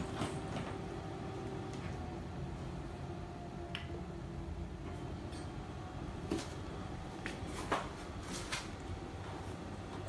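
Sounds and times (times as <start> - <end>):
low room hum: 0.0 - 10.0.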